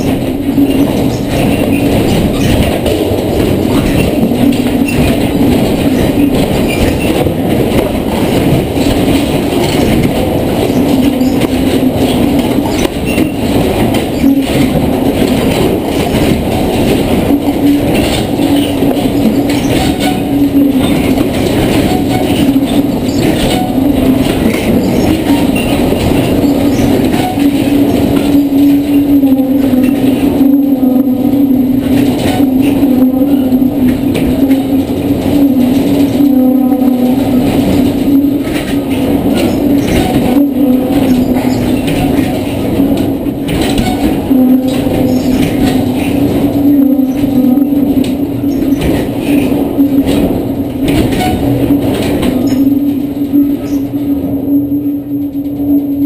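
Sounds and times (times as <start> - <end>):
rattling: 0.0 - 54.0
shake table rumble and hum: 0.0 - 54.1.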